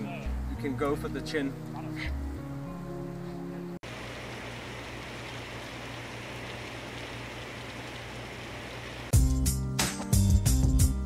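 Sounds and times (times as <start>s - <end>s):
background music: 0.0s - 3.8s, 9.1s - 11.0s.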